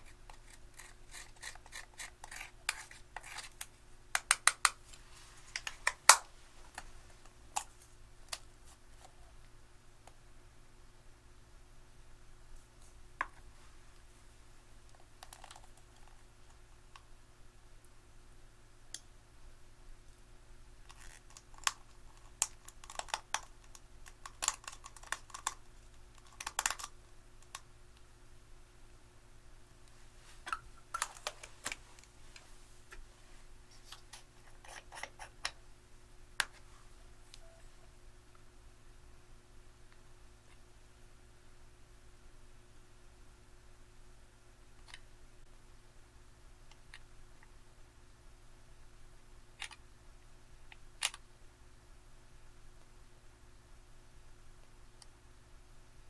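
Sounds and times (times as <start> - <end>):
metal spatula scraping eyeshadow: 0.0 - 3.6.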